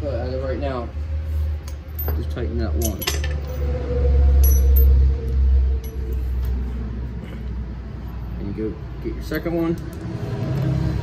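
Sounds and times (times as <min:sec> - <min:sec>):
metal hardware clinking: 0:01.7 - 0:03.6, 0:04.4 - 0:05.0
low rumble: 0:01.8 - 0:08.0.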